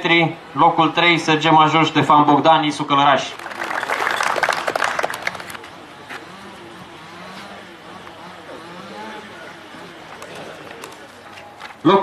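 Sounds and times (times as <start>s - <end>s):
faint voices murmuring: 3.0s - 12.0s
audience applauding: 3.2s - 5.6s.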